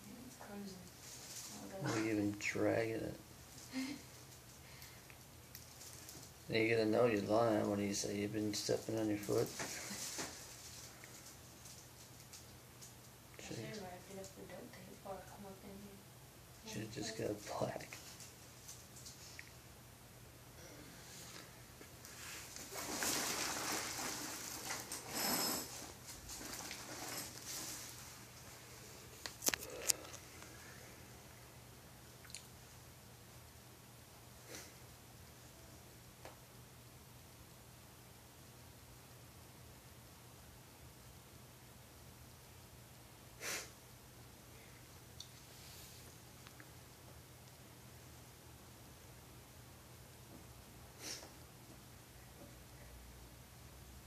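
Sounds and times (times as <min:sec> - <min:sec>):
backpack rustling on paper: 0:22.2 - 0:25.1.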